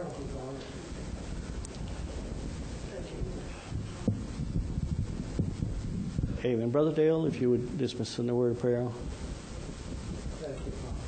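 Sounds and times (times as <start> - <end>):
people shuffling and rustling: 0.0 - 11.0.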